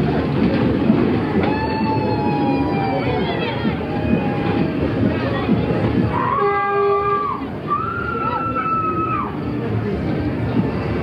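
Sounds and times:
ride cars rumbling on track: 0.0 - 11.0.

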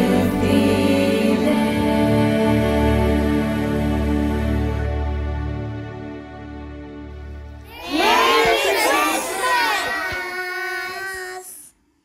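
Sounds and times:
children singing: 0.0 - 4.2, 7.7 - 11.6.

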